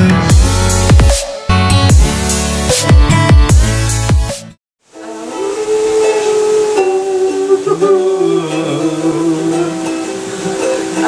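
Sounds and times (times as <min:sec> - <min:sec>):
lower voice singing: 0:04.9 - 0:11.0
voices singing long notes: 0:04.9 - 0:11.0
ukulele playing: 0:05.0 - 0:11.0.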